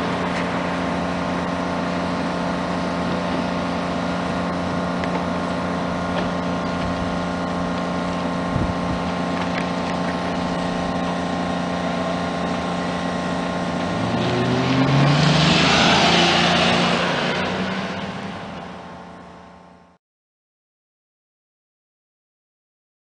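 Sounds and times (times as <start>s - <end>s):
car engine running: 0.0s - 20.0s
car accelerating past: 13.7s - 19.0s.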